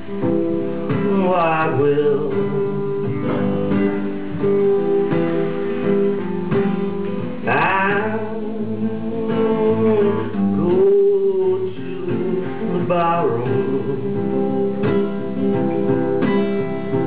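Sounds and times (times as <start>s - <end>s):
acoustic guitar strumming: 0.0s - 17.0s
man singing: 0.6s - 4.5s, 6.1s - 15.7s.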